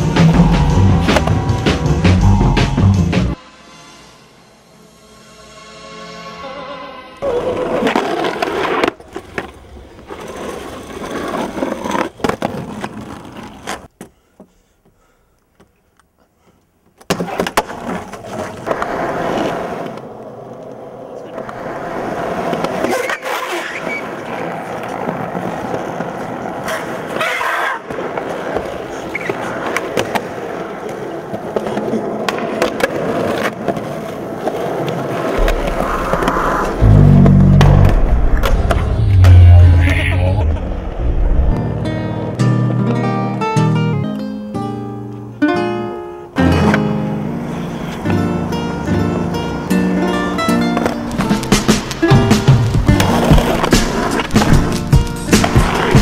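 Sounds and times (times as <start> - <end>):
deep bass music beat: 0.0 - 3.4, 35.4 - 41.6
skateboard wheels rolling on concrete: 0.0 - 3.4, 7.2 - 14.6, 15.5 - 44.0, 45.0 - 56.0
skateboard clacks: 17.0 - 36.8, 50.6 - 56.0
people's voices: 35.4 - 41.5.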